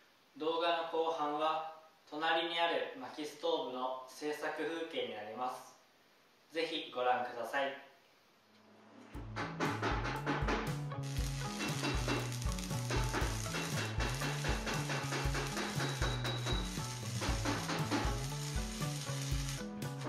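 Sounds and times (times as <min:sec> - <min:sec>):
background music with drum beat: 0:09.2 - 0:20.0
arc welding crackling sizzle: 0:10.2 - 0:20.0.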